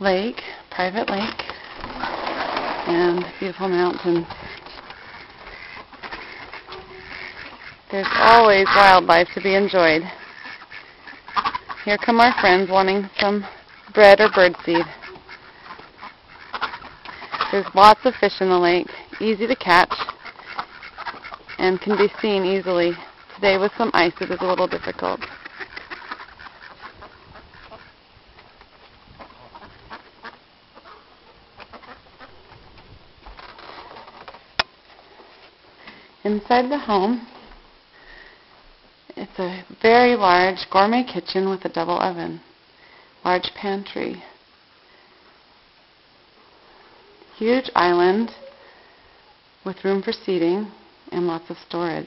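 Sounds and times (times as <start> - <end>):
ducks quacking: 1.2 - 32.6.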